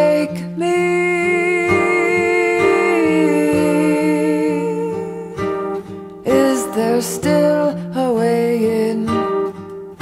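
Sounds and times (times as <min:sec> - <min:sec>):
plucked strings: 0:00.0 - 0:10.0.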